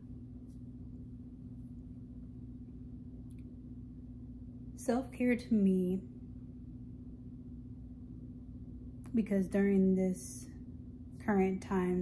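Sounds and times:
constant buzzing tone: 0.0 - 12.0.

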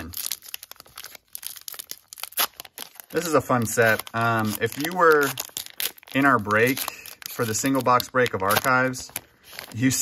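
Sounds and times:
card pack wrapper tearing: 0.0 - 10.0.

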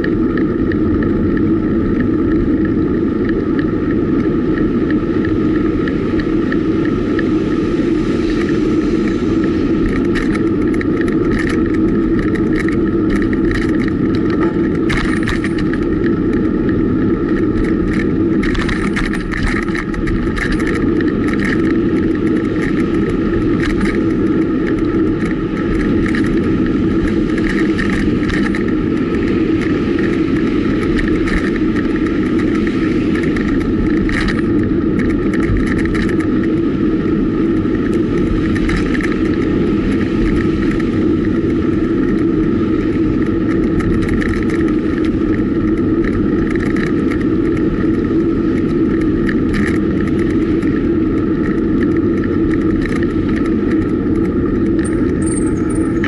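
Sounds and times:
bike road noise rumble: 0.0 - 56.0.

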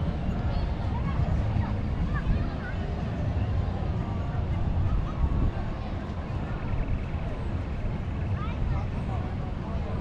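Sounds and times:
faint distant voices: 0.0 - 10.0
wind rumble on microphone: 0.0 - 10.0.

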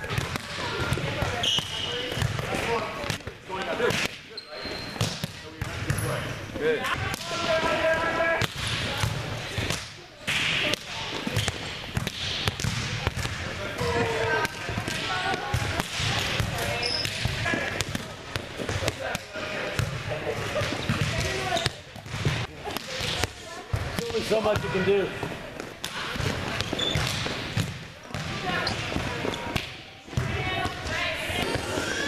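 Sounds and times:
players' voices chattering: 0.0 - 32.0
volleyballs struck and bouncing: 0.0 - 32.0.

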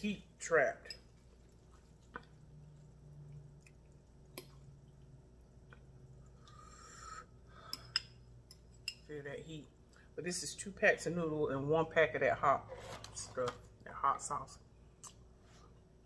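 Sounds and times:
quiet chewing: 1.1 - 6.7.

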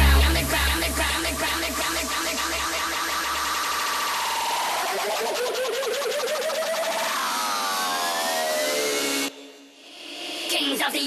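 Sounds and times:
warbling synth tone: 0.0 - 8.8
synth sweep with rising and falling tones: 0.0 - 9.4.

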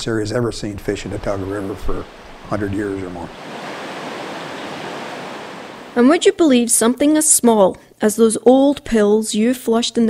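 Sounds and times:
small water cascade: 0.6 - 6.1
creek rushing: 1.0 - 6.3.

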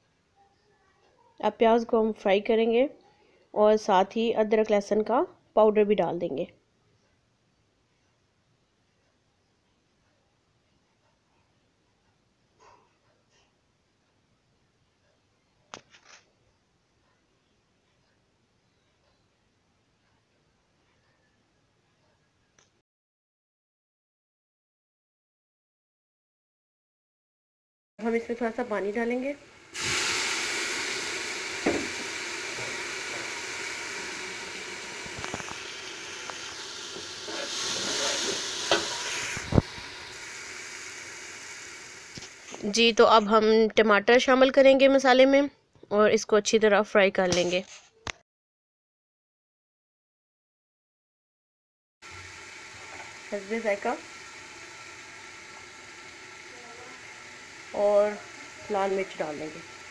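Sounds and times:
water hissing in hot oil: 28.0 - 43.1, 52.0 - 59.9.

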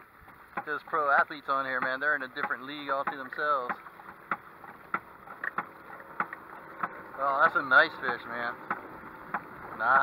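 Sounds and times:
faint wind: 0.0 - 10.0
water noise: 0.0 - 10.0
mallet knocking on boat hull: 1.8 - 9.5.

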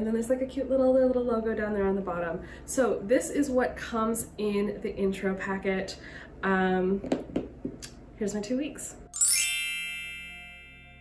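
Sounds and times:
bright chime shimmer: 9.2 - 11.0.

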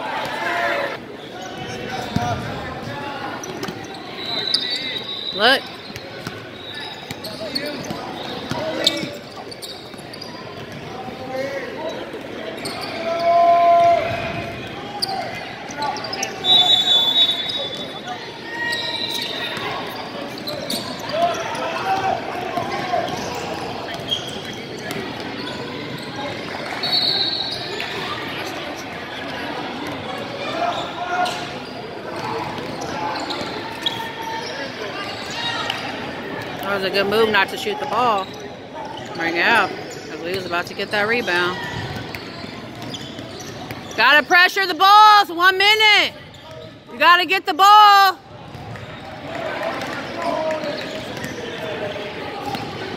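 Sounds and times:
voices echoing in hall: 0.0 - 52.9
shoe squeaks: 3.4 - 10.8, 11.8 - 13.3, 14.9 - 21.8, 22.8 - 29.4, 30.4 - 35.9, 36.7 - 44.6, 46.2 - 46.9.

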